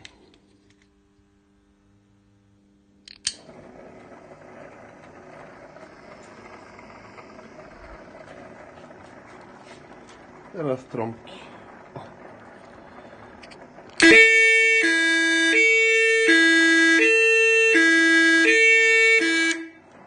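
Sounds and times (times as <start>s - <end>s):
rotating beacon motor whirring: 3.5s - 19.8s.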